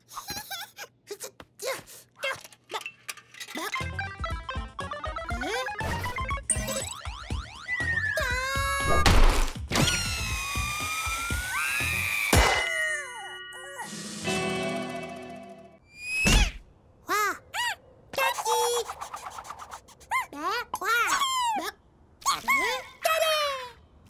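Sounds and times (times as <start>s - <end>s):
squeaky character vocalisations: 1.1s - 3.9s, 5.3s - 9.1s, 16.0s - 23.7s
background music: 3.8s - 15.8s.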